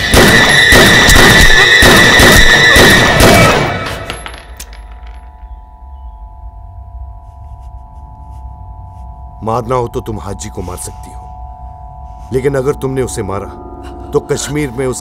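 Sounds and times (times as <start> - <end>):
percussion hits: 0.0 - 5.5
sustained drone of held notes: 5.4 - 15.0.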